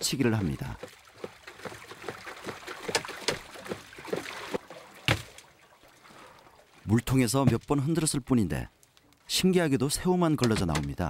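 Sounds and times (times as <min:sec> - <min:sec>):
water sloshing and splashing: 0:00.0 - 0:09.3.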